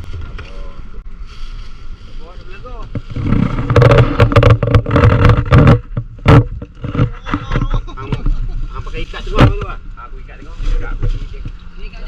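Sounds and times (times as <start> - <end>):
clattering knocks: 2.9 - 8.3.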